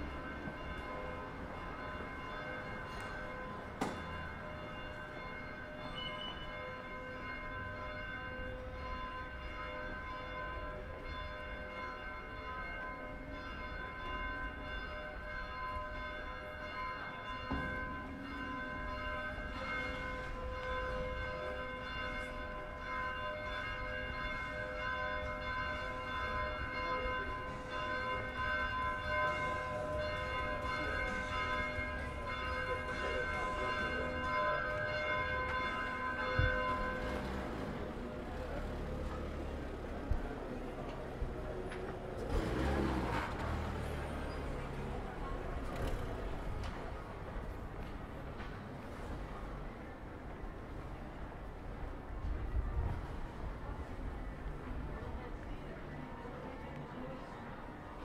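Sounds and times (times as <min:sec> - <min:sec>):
church bells ringing: 0:00.0 - 0:52.6
low street noise: 0:00.0 - 0:58.0.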